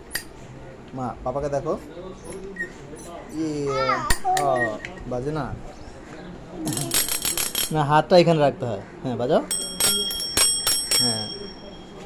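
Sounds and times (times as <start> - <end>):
bicycle bell dinging: 9.5 - 12.0.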